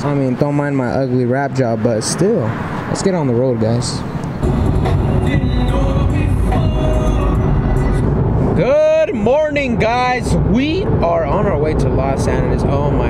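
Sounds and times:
car interior rumble: 4.1 - 13.0
man singing loudly: 4.8 - 7.9.

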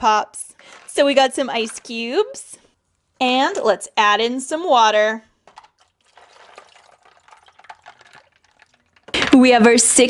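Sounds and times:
ice cubes ticking: 5.4 - 9.2
water trickling onto ice cubes: 5.4 - 9.2.

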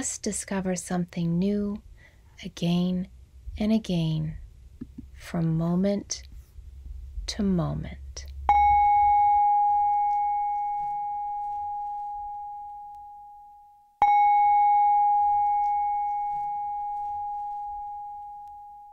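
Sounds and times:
singing bowl ringing: 8.5 - 18.9.

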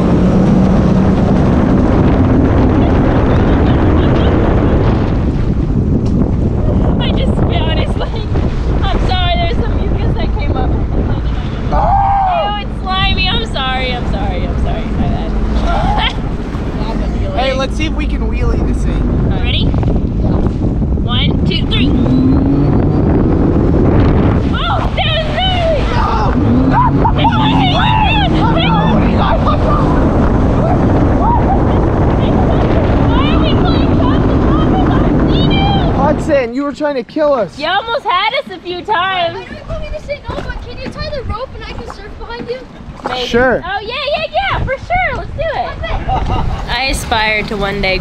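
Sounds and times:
water rushing: 0.0 - 48.0
watercraft engine: 0.0 - 48.0
wind on microphone: 0.0 - 48.0
people shouting and laughing: 10.9 - 12.8, 15.6 - 17.0, 24.5 - 36.0, 43.8 - 46.9.

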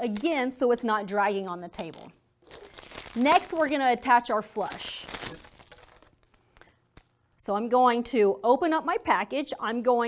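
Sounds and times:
plastic wrapper crinkling: 1.9 - 7.4.

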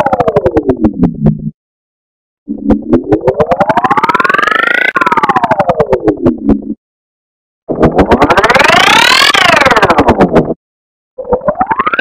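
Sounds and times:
rapid synthetic pulses: 0.0 - 1.6, 2.5 - 6.8, 7.7 - 10.6, 11.2 - 12.0.

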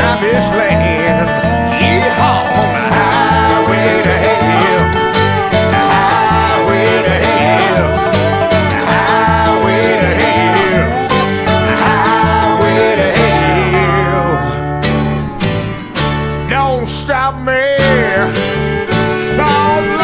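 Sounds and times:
bass long low notes: 0.0 - 20.0
bluegrass band playing: 0.0 - 20.0.

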